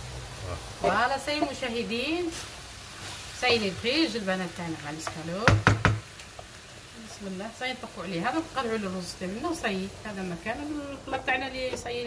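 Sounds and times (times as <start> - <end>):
wooden spoon knocking on pan: 4.9 - 6.5, 11.1 - 12.0.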